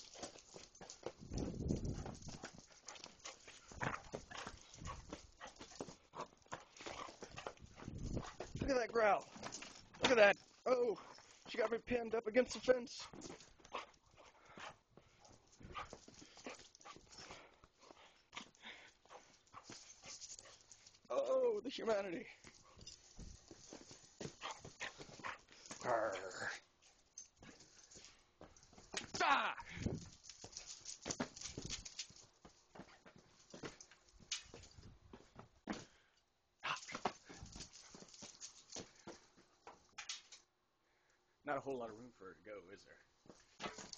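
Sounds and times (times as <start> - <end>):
scuffling steps and knocks: 0.0 - 21.2, 21.8 - 36.0, 36.6 - 40.5, 43.1 - 43.9.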